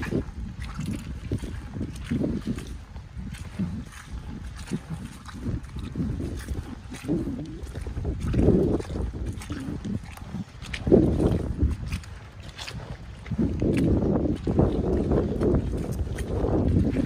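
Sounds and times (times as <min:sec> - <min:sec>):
boots squelching through mud: 0:00.0 - 0:17.0.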